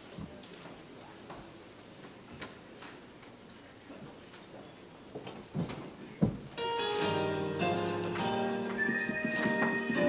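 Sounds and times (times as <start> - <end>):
faint room background noise: 0.0 - 10.0.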